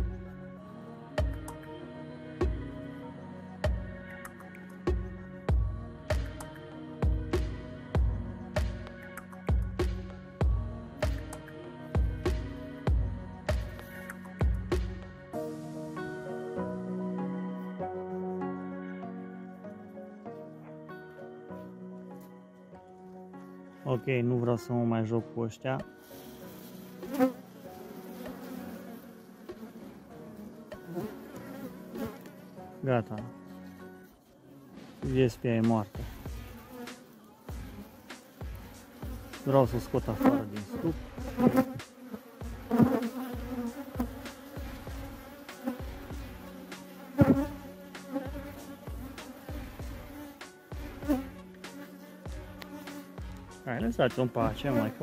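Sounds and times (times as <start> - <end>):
honeybees buzzing: 0.0 - 24.9, 25.8 - 55.0.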